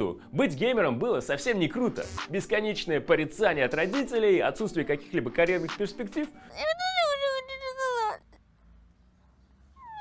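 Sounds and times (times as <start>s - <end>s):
boy crying with wails: 6.4s - 8.4s.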